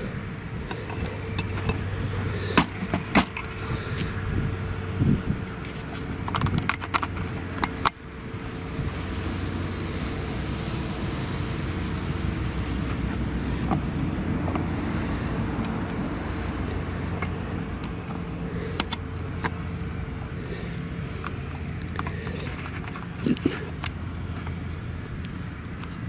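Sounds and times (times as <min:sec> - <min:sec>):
forage harvester droning: 0:00.0 - 0:26.0
sharp clicks and knocks: 0:00.6 - 0:04.1, 0:05.5 - 0:08.4.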